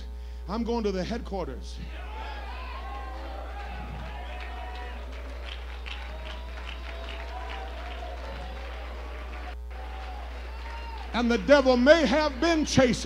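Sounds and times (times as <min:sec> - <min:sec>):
low electrical hum: 0:00.0 - 0:13.0
congregation clapping along: 0:02.8 - 0:13.0.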